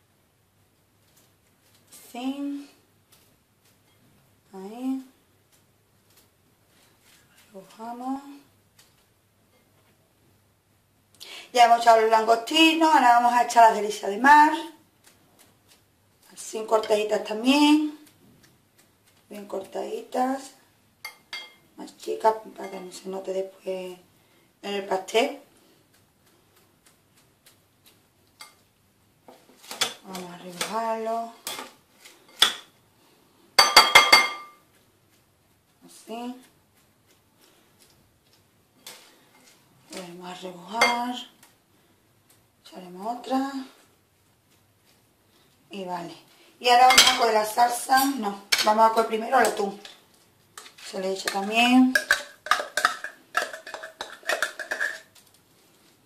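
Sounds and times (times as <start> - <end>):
metal tin clicking on glass bowl: 52.0 - 55.1.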